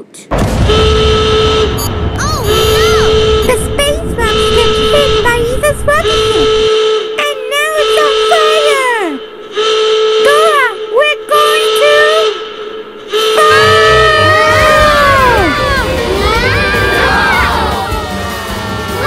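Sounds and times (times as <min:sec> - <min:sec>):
low rumble: 0:00.3 - 0:06.8, 0:12.4 - 0:19.0.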